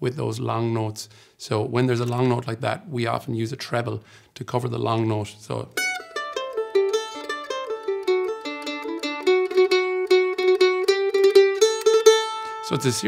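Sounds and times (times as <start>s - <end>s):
mandolin picked with a plectrum: 5.7s - 13.0s.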